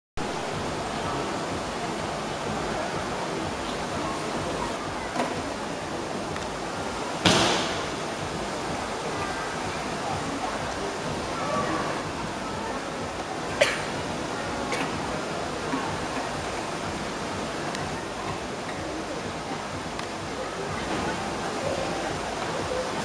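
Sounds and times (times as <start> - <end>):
faint voices: 0.2 - 23.0.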